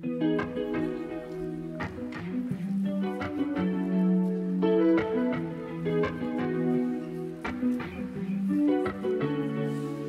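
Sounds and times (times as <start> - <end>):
plucked notes over held chords: 0.0 - 10.0.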